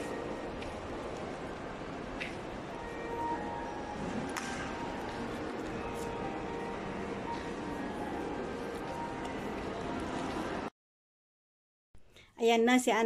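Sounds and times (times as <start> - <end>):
faint background music: 0.0 - 10.7.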